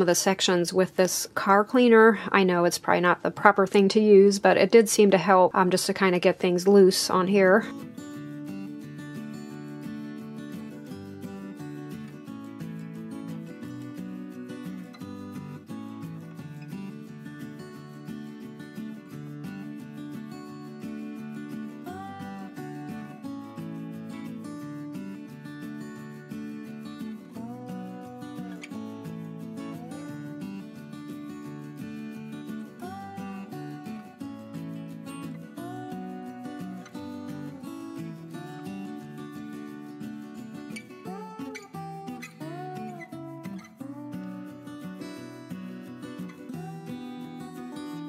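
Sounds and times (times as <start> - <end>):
strummed acoustic guitar: 0.0 - 48.0.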